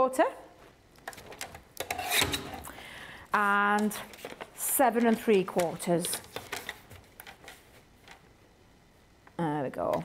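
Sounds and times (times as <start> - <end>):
paper rustling: 3.4 - 8.2.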